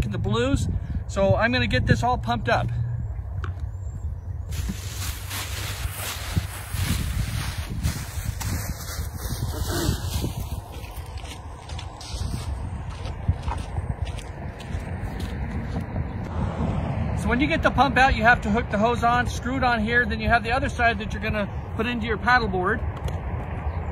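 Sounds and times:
wind rumbling on microphone: 0.0s - 23.9s
rustling in dry grass: 4.5s - 15.4s
footsteps in dry grass: 4.5s - 16.3s.

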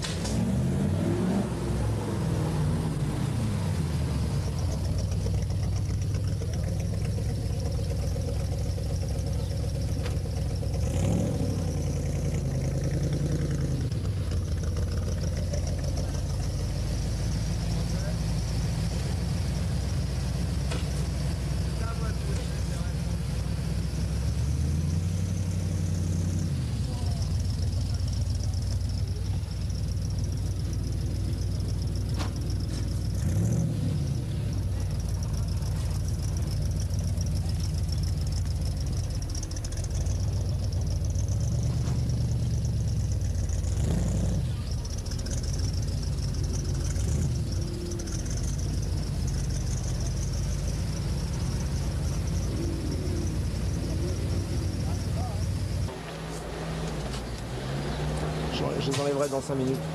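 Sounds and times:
car engine running: 0.0s - 59.9s.

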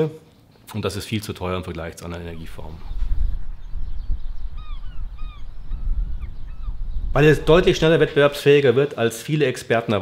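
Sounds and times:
wind rumble on microphone: 2.2s - 8.4s
bird calls: 2.3s - 8.4s.

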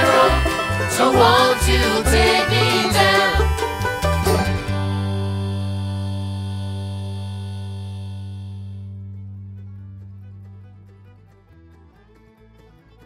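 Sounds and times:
bluegrass band playing: 0.0s - 13.0s.

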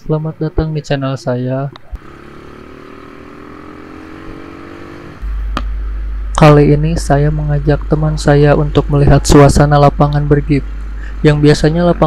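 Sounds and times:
motorcycle engine running: 0.0s - 12.0s
road and wind noise: 0.0s - 12.0s.

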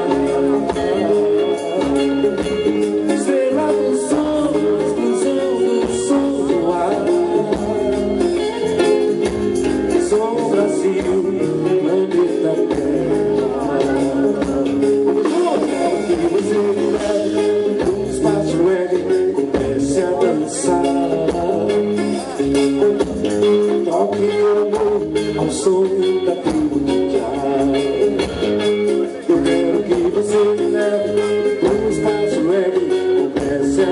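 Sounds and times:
drum kit: 0.0s - 33.9s
electric and acoustic guitars: 0.0s - 33.9s
hand percussion: 0.0s - 33.9s.

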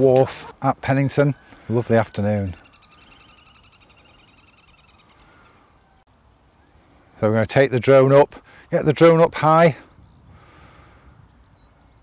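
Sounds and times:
bird trilling: 1.2s - 6.8s
bird chirps: 1.2s - 6.9s, 9.9s - 12.0s.

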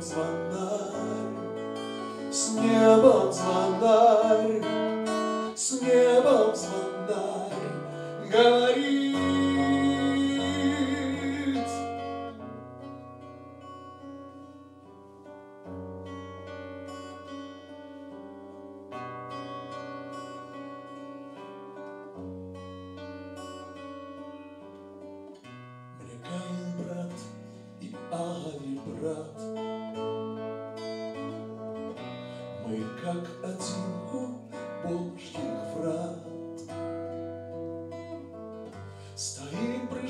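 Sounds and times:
acoustic guitar picking: 0.0s - 40.0s.

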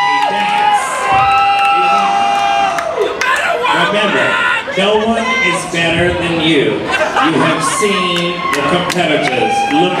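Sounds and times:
crowd cheering and screaming: 0.0s - 6.0s, 6.8s - 10.0s.

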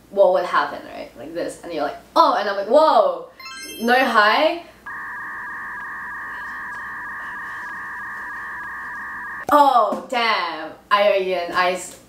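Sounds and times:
steady electronic tone: 3.4s - 9.4s.

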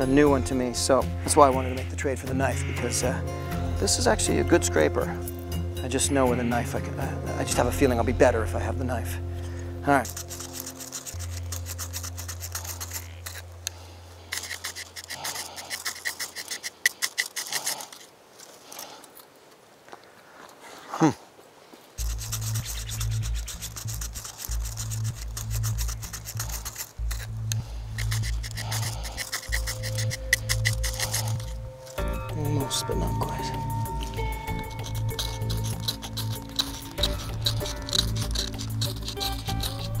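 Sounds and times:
background music: 0.0s - 14.9s, 22.0s - 40.0s
knife scraping flint striker: 9.4s - 19.3s, 22.0s - 40.0s.

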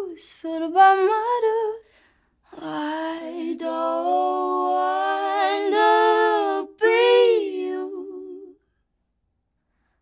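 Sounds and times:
woman singing unaccompanied: 0.0s - 1.8s, 2.5s - 8.6s.

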